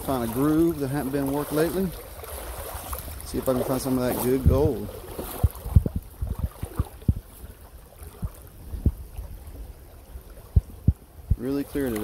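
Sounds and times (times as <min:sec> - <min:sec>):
water running in creek: 0:00.0 - 0:12.0
steady low rumble: 0:01.9 - 0:11.7
low thumps on microphone: 0:04.4 - 0:07.4, 0:08.1 - 0:09.7, 0:10.4 - 0:11.6.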